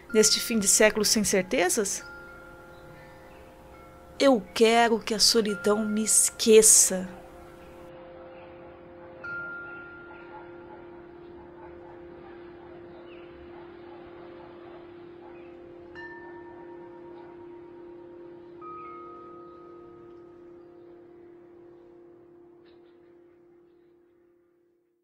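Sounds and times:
chimes struck: 0.0s - 23.9s
low drone: 0.0s - 24.4s.

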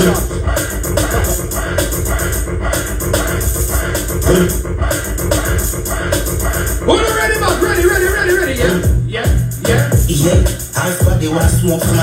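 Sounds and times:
loud music with a beat: 0.0s - 12.0s.

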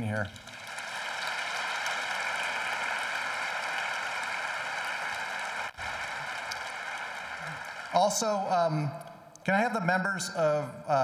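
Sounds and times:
large audience applauding: 0.0s - 8.8s.

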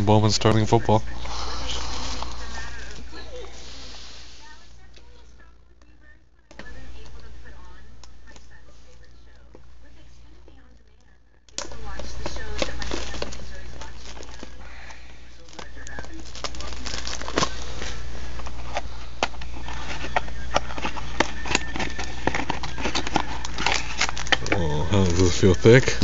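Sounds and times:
steady low hum: 0.0s - 26.0s
foil pack crinkling: 11.6s - 26.0s
cardboard box being opened: 15.5s - 17.6s, 18.4s - 26.0s.

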